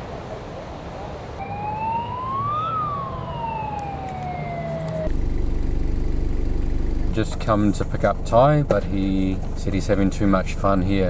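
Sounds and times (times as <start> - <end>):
low engine hum: 1.3 - 11.0
wailing siren-like tone: 1.4 - 5.1.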